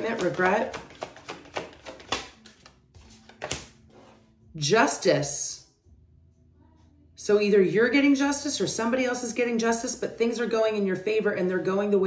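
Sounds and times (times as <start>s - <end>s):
cards snapping and tapping: 0.0s - 3.8s.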